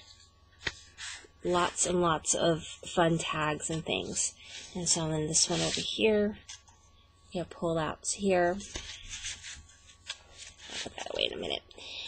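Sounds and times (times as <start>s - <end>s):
paper pages rustling: 5.5s - 5.9s, 8.6s - 11.2s.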